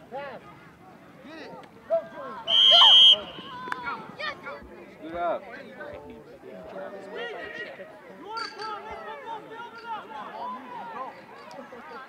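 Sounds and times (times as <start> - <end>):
children and adults talking and calling: 0.0 - 12.0.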